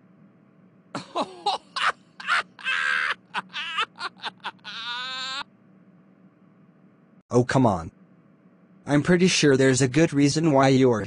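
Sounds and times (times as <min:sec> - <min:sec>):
person laughing: 0:01.0 - 0:05.4.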